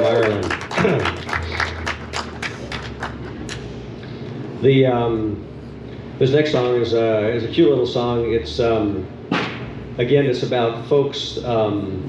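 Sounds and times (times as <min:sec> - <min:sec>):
audience clapping: 0:00.0 - 0:03.7.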